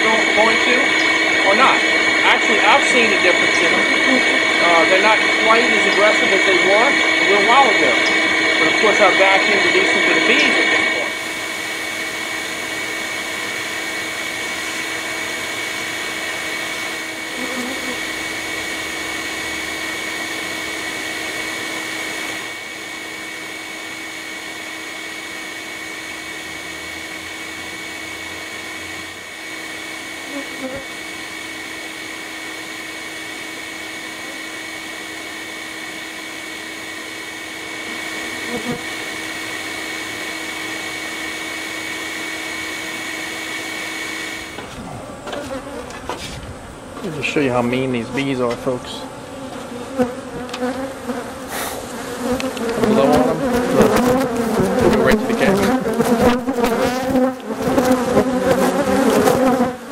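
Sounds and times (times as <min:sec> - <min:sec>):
bee vacuum motor running: 0:00.0 - 0:59.9.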